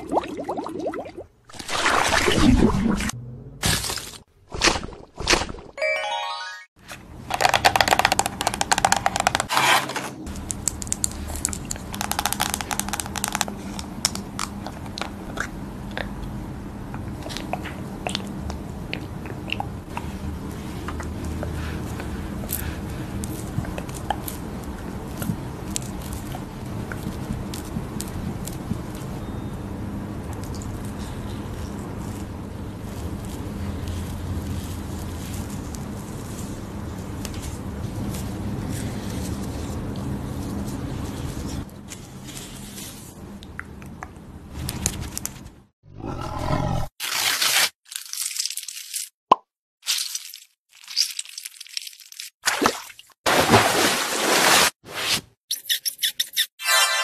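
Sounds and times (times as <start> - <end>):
crinkling and scraping handling noises: 30.4 - 43.2.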